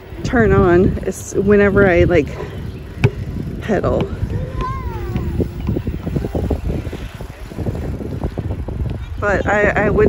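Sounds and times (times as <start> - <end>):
low rumble of bike ride: 0.0 - 10.0
wind buffeting microphone: 0.0 - 10.0.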